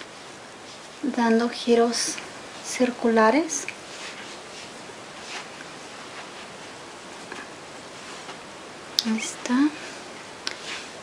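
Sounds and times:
sponge rustling on skin: 0.0s - 8.5s, 9.1s - 11.0s
room hiss: 0.0s - 11.0s.

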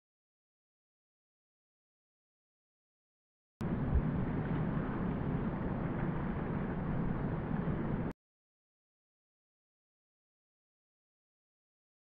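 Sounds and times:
wind buffeting microphone: 3.6s - 8.1s.

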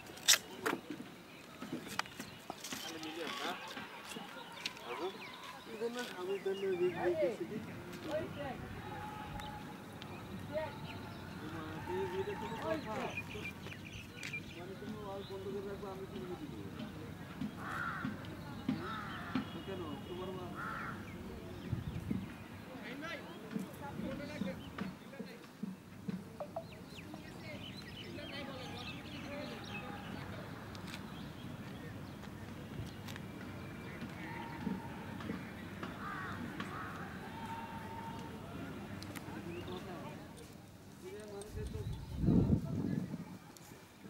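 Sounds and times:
low voices talking: 2.6s - 30.8s.

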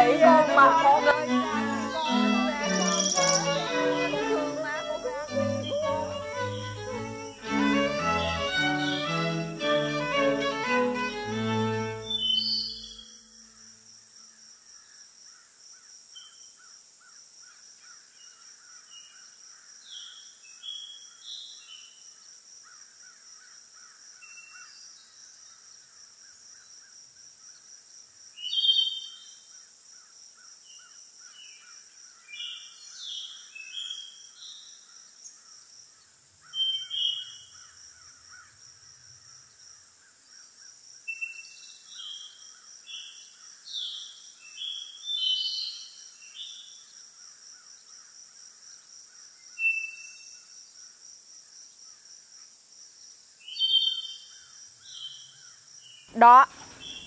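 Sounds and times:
insects trilling: 0.0s - 9.8s, 22.0s - 45.4s, 46.0s - 57.0s
bird chirps and whistles: 2.8s - 3.6s, 12.1s - 13.2s.

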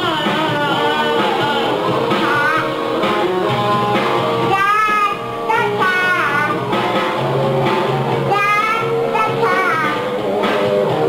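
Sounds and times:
rock music with guitar: 0.0s - 11.0s
small child singing: 2.1s - 2.8s, 4.4s - 6.6s, 8.2s - 10.2s.

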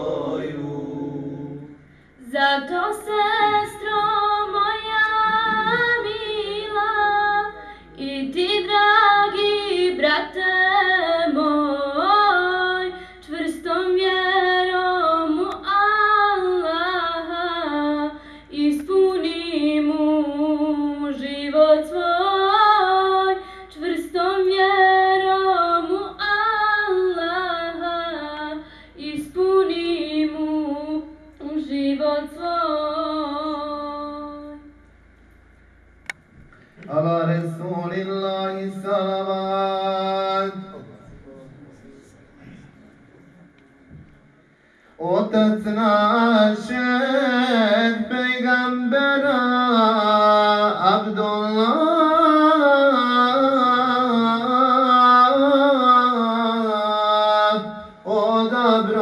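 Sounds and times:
woman singing devotional chant: 2.2s - 34.8s, 45.0s - 59.0s.

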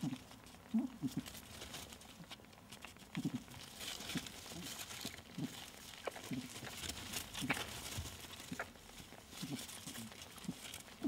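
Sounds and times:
rustling and crackling of straw: 0.0s - 11.0s.

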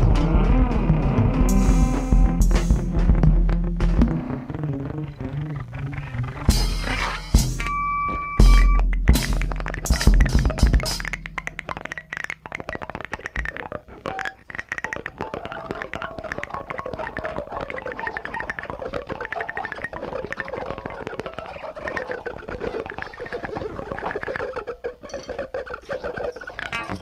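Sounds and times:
crackling and scratching clicks: 8.5s - 27.0s.

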